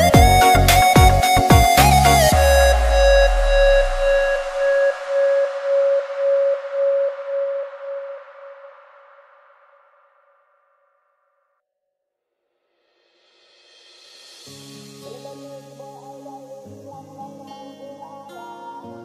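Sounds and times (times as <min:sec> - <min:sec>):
held synth tone with pulse: 0:00.0 - 0:10.4.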